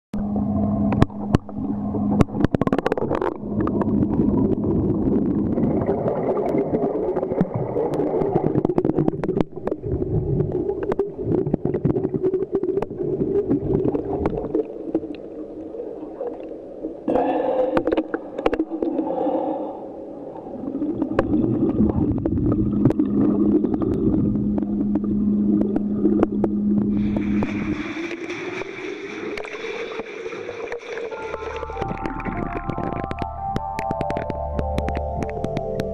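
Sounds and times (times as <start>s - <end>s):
steady pitched hum: 0.1s - 35.9s
muffled underwater gurgling: 0.2s - 35.9s
sharp clicks and knocks: 31.8s - 35.9s.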